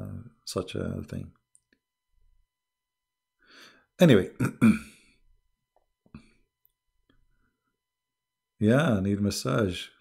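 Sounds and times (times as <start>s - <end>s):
man breathing at microphone: 3.4s - 3.9s.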